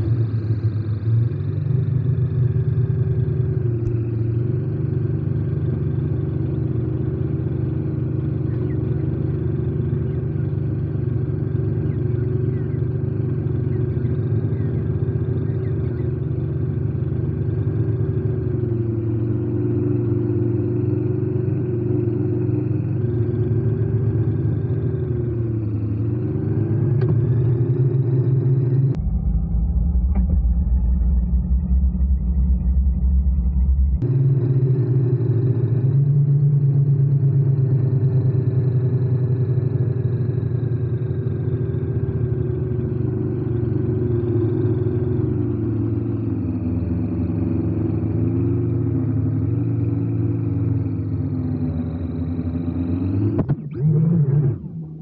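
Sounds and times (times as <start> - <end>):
drone motors buzzing: 48.4 - 55.0.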